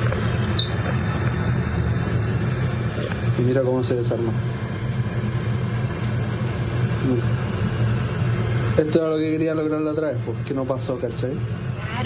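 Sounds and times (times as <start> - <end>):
rumbling background noise: 0.0 - 12.0
steady low hum: 0.0 - 12.0.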